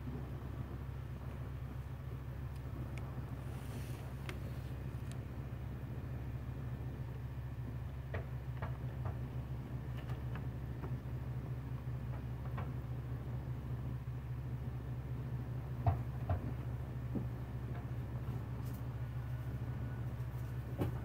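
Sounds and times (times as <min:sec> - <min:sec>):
steady low hum: 0:00.0 - 0:21.0
light clicks and knocks: 0:08.0 - 0:11.1, 0:12.0 - 0:12.8.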